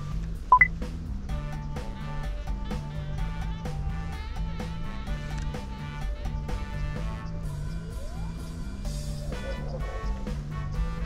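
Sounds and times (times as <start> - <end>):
background music with beat: 0.0 - 11.0
two-note electronic beep: 0.5 - 0.7.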